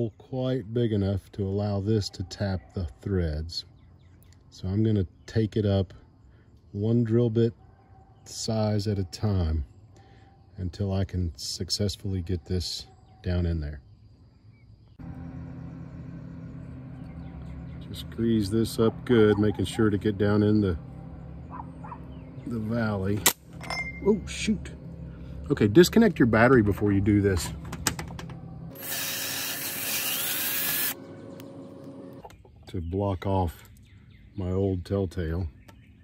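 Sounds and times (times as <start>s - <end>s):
steady low hum: 13.7s - 34.4s.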